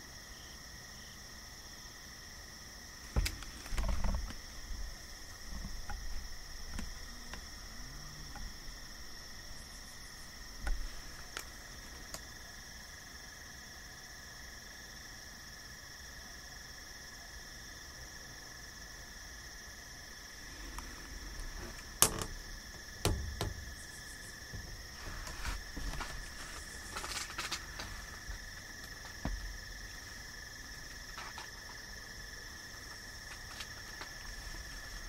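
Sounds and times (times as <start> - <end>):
insect chorus trilling: 0.0 - 35.0
sharp clicks and knocks: 21.4 - 24.8.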